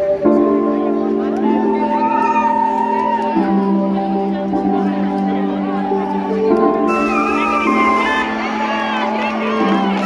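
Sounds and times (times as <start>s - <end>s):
sustained keyboard chords: 0.0s - 10.0s
live pop band music: 4.3s - 10.0s.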